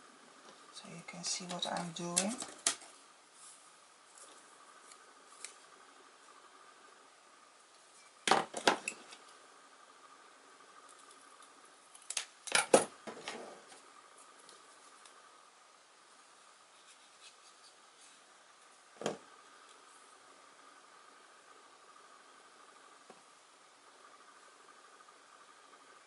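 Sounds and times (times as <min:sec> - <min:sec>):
wood snapping and clicking: 0:12.0 - 0:12.6.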